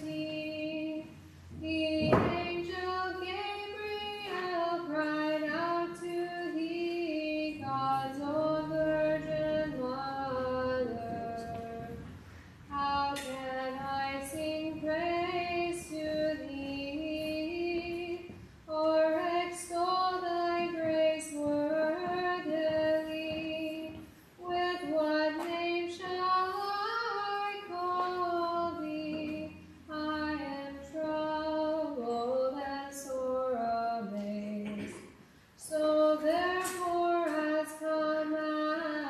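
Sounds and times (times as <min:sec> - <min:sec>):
woman chanting a hymn: 0:00.0 - 0:12.1.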